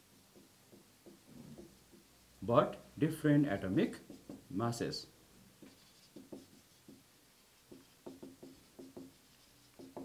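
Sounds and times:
marker squeaking on whiteboard: 5.6s - 7.0s, 7.6s - 10.0s.

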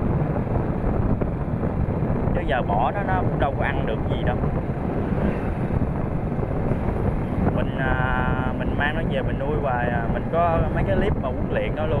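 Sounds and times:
road noise: 0.0s - 12.0s
wind buffeting microphone: 0.0s - 12.0s.

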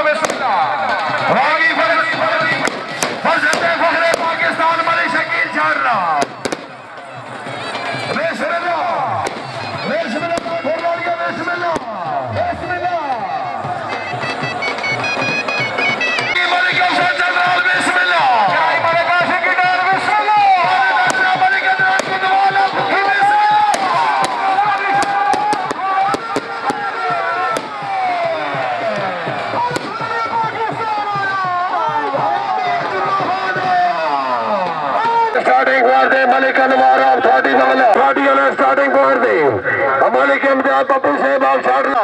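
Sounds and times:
man talking over loudspeaker: 0.0s - 6.5s, 7.9s - 14.1s, 16.2s - 42.0s
firecracker bangs: 0.1s - 4.9s, 6.2s - 8.4s, 9.2s - 17.2s, 19.8s - 31.5s
loud music with held melody: 9.0s - 35.0s.

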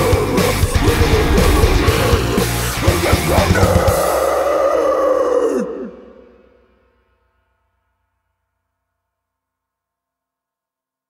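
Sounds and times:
heavy metal music: 0.0s - 4.6s
man screaming: 4.0s - 6.3s.

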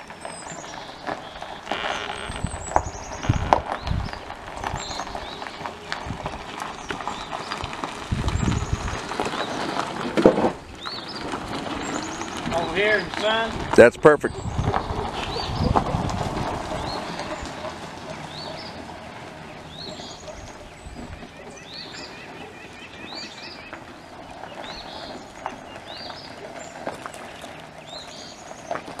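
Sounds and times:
small birds chirping: 0.0s - 9.9s, 10.6s - 29.0s
low rumble: 10.6s - 21.2s.

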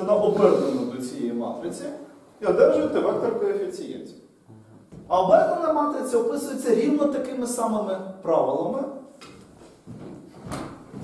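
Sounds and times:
footsteps on wooden floor: 9.3s - 11.0s.

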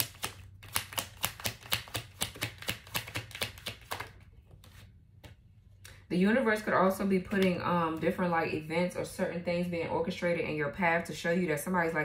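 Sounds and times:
cards being shuffled: 0.0s - 5.4s.

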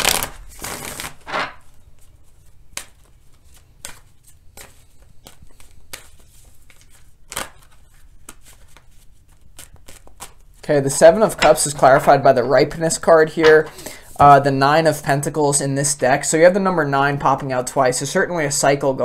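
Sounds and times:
cards being shuffled: 0.0s - 14.3s.

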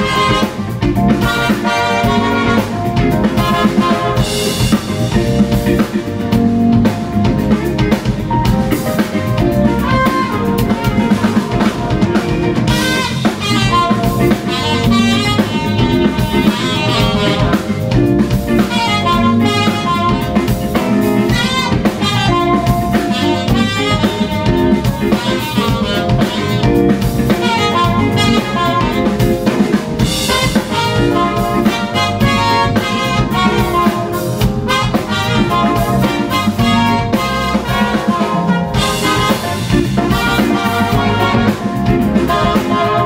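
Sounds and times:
trumpet melody: 0.0s - 7.9s, 8.8s - 43.0s
saxophone melody: 0.0s - 43.0s
smooth jazz band playing: 0.0s - 43.0s.

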